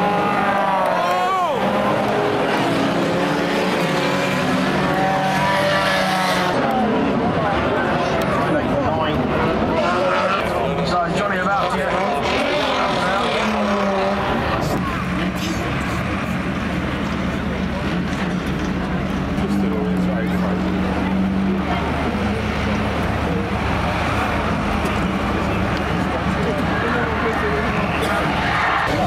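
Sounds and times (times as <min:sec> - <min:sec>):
race car engines revving: 0:00.0 - 0:29.0
tractor engine drone: 0:00.0 - 0:29.0.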